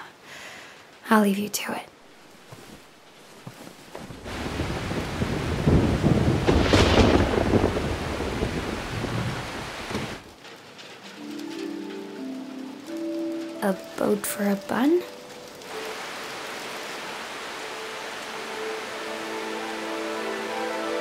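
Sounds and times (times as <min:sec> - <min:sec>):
heavy rain: 0:00.0 - 0:21.0
rolling thunder: 0:04.1 - 0:13.5.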